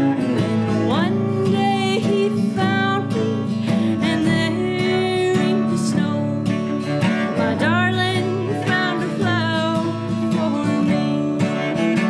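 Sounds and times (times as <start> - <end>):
sliding lead melody: 0.0 - 12.0
strummed acoustic guitar: 0.0 - 12.0.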